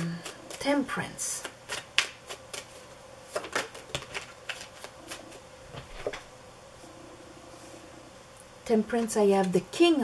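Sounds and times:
cards being shuffled: 1.4 - 6.2.

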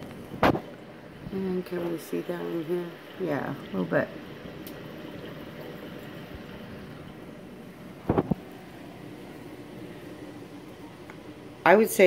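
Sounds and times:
aquarium pumps humming: 0.0 - 12.0.

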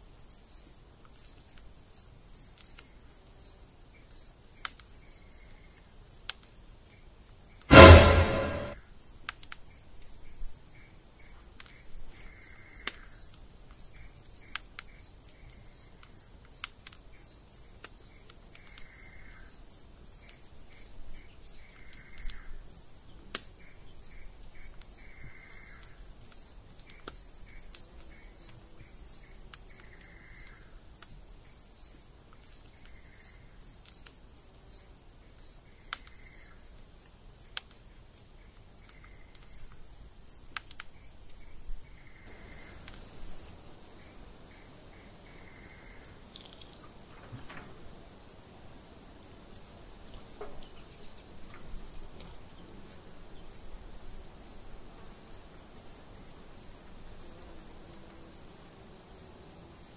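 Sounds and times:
crickets chirping: 41.0 - 59.9.

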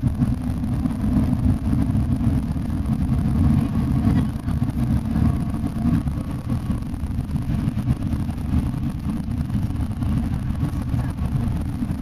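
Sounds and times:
coach engine and tyre rumble: 0.0 - 12.0.

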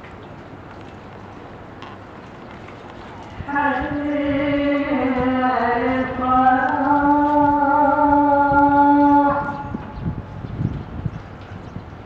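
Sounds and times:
faint open-air background: 0.0 - 12.0
amplified chanting voice: 3.4 - 10.0.

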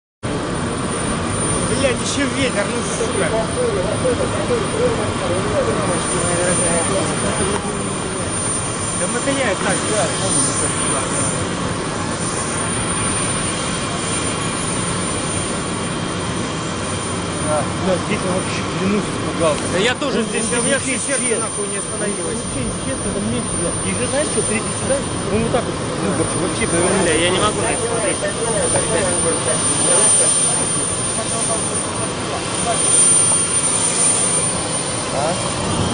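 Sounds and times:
steady rushing noise: 0.2 - 35.9
indistinct voices talking: 0.4 - 35.9.

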